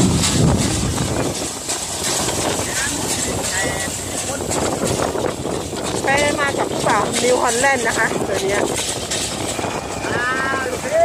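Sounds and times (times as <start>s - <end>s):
baler mechanism running: 0.0s - 11.0s
tractor engine running: 0.0s - 11.0s.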